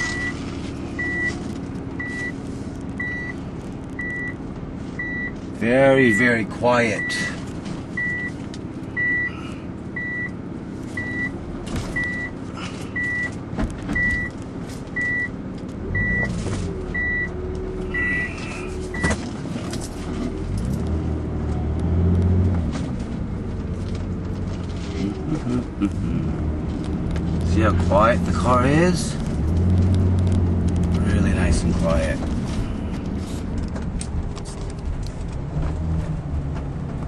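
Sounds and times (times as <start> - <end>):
high electronic warning beep: 0.0 - 0.4, 1.0 - 1.4, 2.0 - 2.4, 3.0 - 3.4, 8.0 - 8.4, 9.0 - 9.4, 11.0 - 11.3, 12.0 - 12.4, 15.0 - 16.4, 17.9 - 19.2
engine and road noise: 0.0 - 37.0.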